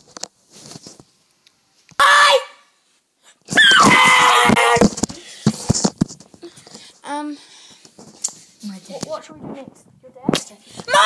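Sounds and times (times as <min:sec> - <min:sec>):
high-pitched scream: 0:02.0 - 0:02.7, 0:03.5 - 0:05.0.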